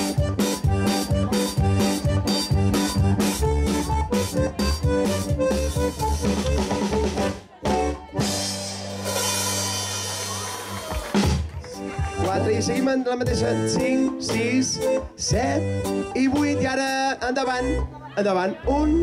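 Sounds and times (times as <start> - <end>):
button accordion tune: 0.0 - 10.1, 11.6 - 19.0
drum kit beat: 0.0 - 17.1.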